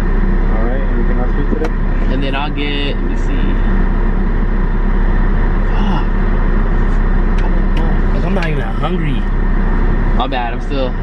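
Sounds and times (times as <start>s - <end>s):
car engine idling: 0.0s - 11.0s.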